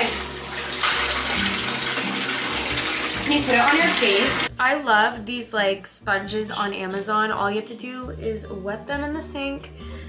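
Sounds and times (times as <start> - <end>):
water running into bathtub: 0.0 - 4.5.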